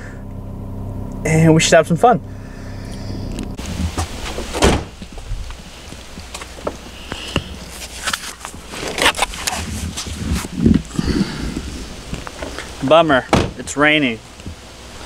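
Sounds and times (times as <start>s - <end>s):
handling noises: 3.3s - 14.6s
car door closing thud: 3.7s - 5.2s, 13.2s - 13.7s.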